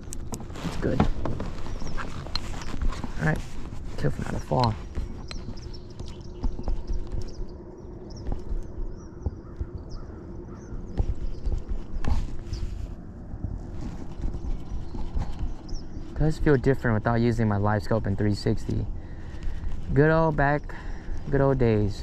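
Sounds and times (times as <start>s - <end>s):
low rumble: 0.0s - 21.2s
faint steady hum: 0.0s - 22.0s
small birds chirping: 0.0s - 22.0s.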